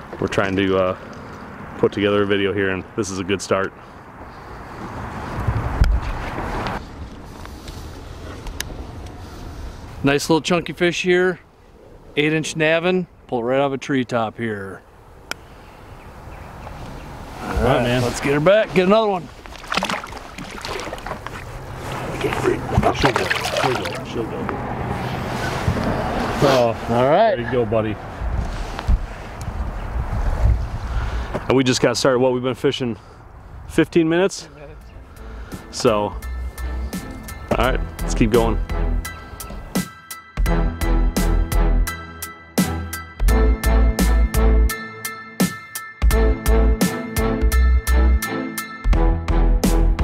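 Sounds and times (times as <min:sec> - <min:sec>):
wind buffeting microphone: 0:04.9 - 0:10.0, 0:27.6 - 0:31.5.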